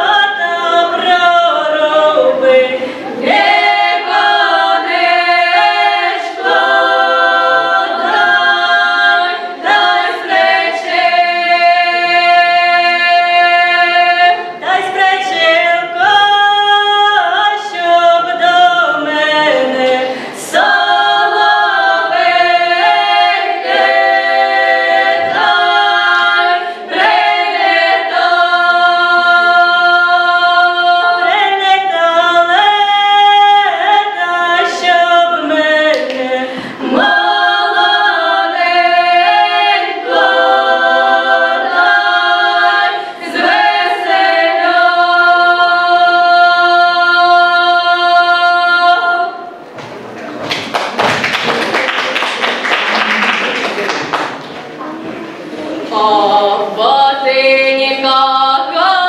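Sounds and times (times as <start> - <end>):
women singing a cappella: 0.0 - 49.7, 55.4 - 59.0.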